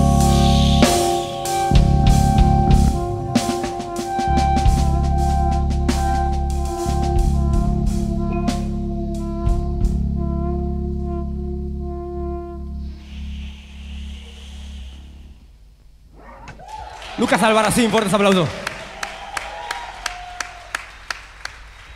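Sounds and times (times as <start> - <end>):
drum hits: 0.0 - 8.8
held brass chord: 0.0 - 14.2.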